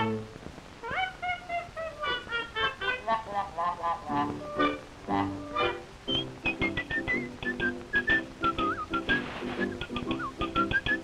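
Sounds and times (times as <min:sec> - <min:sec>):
whistled tune: 0:04.4 - 0:11.0.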